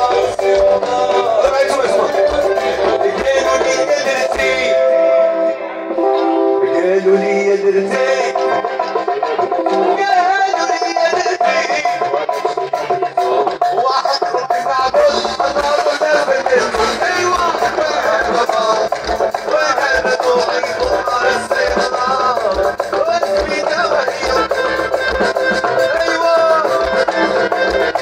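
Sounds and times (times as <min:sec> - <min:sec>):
low drum beat: 0:00.0 - 0:04.7, 0:13.0 - 0:27.1
live band music: 0:00.0 - 0:28.0.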